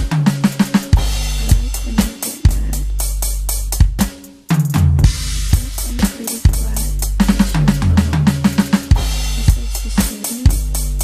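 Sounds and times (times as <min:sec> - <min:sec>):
deep synth bass: 0:00.0 - 0:04.1, 0:04.8 - 0:11.0
electronic drum beat: 0:00.0 - 0:11.0.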